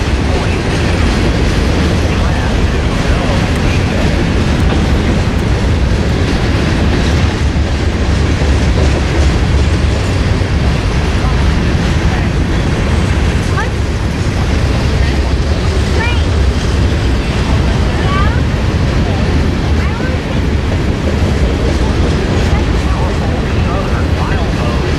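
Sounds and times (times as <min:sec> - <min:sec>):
freight train wheels rumbling on track: 0:00.0 - 0:24.9.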